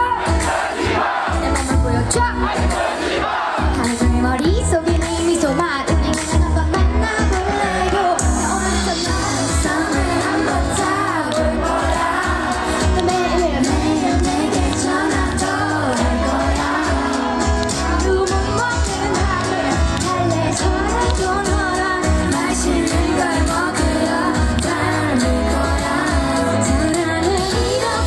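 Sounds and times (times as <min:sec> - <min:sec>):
amplified pop accompaniment: 0:00.0 - 0:28.0
woman singing into microphone: 0:01.3 - 0:02.7, 0:03.6 - 0:28.0.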